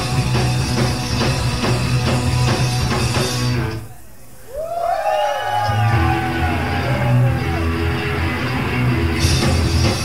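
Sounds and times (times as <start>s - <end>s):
bass and drums: 0.0s - 4.0s, 5.6s - 10.0s.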